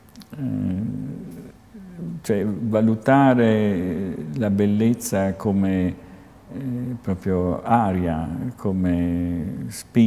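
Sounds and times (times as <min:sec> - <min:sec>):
man saying ehm: 0:00.2 - 0:10.0
man speaking: 0:00.2 - 0:10.0.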